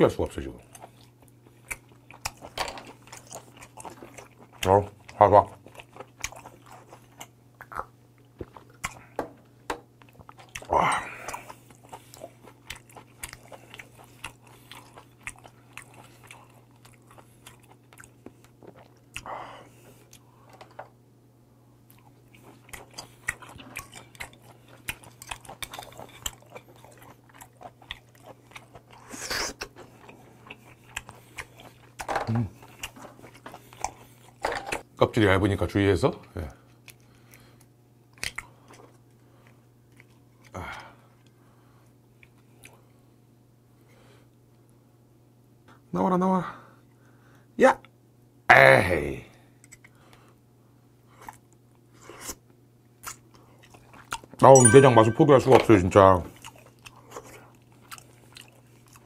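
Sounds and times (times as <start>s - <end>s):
wet chewing mouth sounds: 0.5s - 9.2s, 10.0s - 20.3s, 21.8s - 34.8s, 36.6s - 43.0s, 51.1s - 54.5s, 56.2s - 59.0s.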